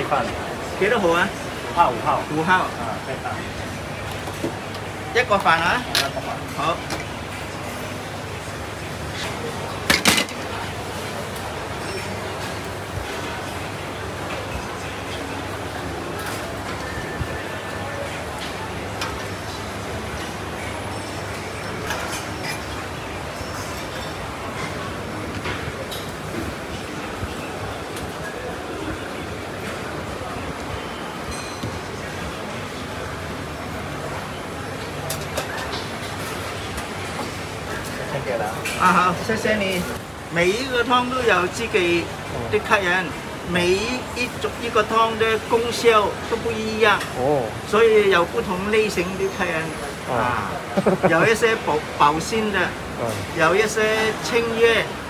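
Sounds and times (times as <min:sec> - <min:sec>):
murmur of voices: 0:00.0 - 0:55.0.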